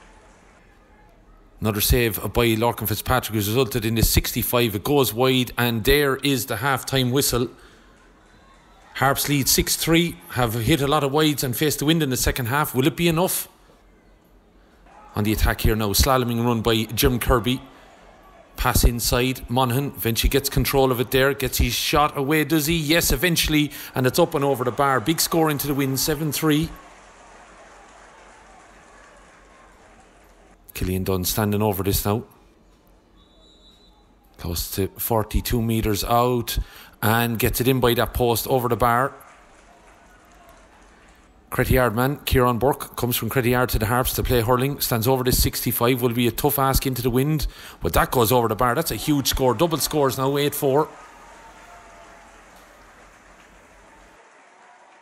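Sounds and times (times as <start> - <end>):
outdoor ambient hiss: 26.8 - 38.2.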